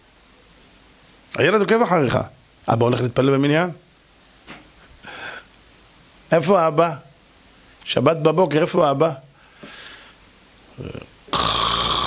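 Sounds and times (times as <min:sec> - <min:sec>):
soft breath: 0:05.0 - 0:05.5, 0:09.4 - 0:10.2
man imitating a snore: 0:10.7 - 0:12.0.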